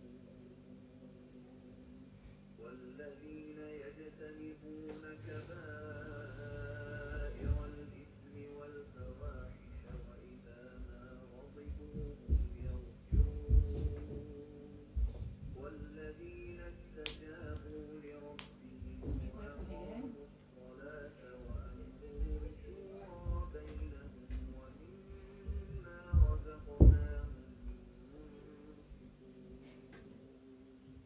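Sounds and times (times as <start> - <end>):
faint background music: 0.0 - 31.0
steady low hum: 0.0 - 31.0
dull low thumps: 6.7 - 8.0, 9.0 - 16.7, 18.8 - 20.0, 21.5 - 27.9.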